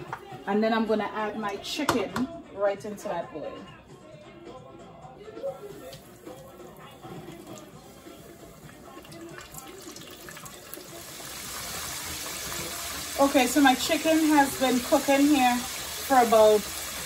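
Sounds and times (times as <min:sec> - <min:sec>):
soft background music: 0:00.0 - 0:17.0
chicken frying in oil: 0:05.7 - 0:17.0.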